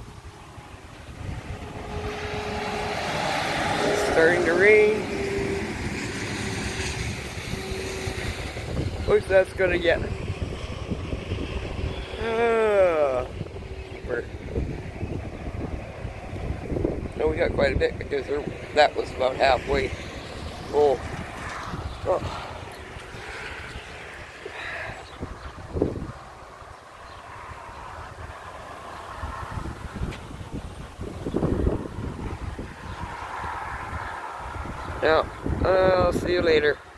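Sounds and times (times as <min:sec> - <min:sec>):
wind buffeting microphone: 0:00.0 - 0:36.9.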